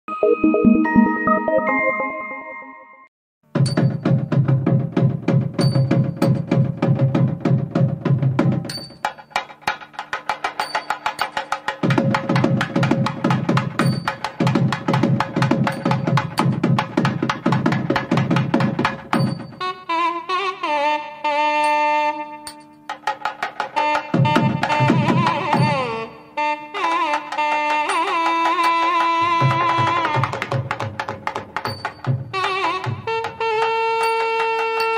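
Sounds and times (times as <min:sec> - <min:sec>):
fast drumming: 0:03.5 - 0:19.6, 0:22.9 - 0:26.0, 0:27.1 - 0:34.9.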